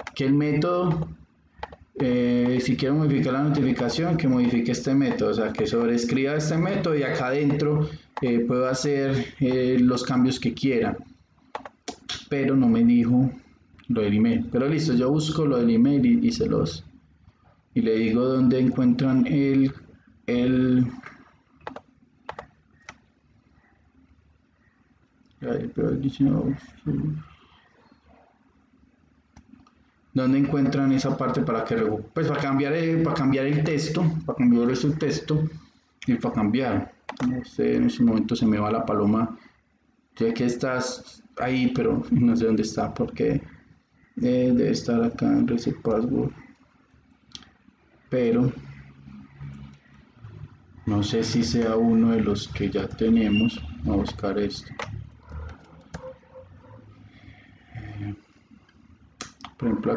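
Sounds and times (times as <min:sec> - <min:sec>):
computer mouse clicks: 0:00.0 - 0:00.2, 0:00.9 - 0:02.7, 0:03.5 - 0:05.8, 0:11.4 - 0:12.2, 0:21.1 - 0:23.1, 0:37.1 - 0:37.4, 0:54.0 - 0:56.2.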